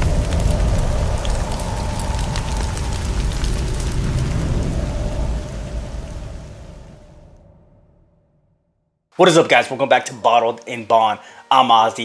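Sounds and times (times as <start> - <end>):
crackle of sparks: 0.0 - 7.4
deep rumble: 0.0 - 8.8.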